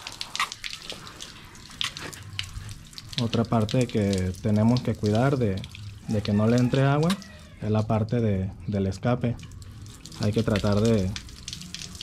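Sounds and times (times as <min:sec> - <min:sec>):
hose spraying water on plastic: 0:00.0 - 0:07.6, 0:09.5 - 0:12.0
water splashing and dripping: 0:00.0 - 0:12.0.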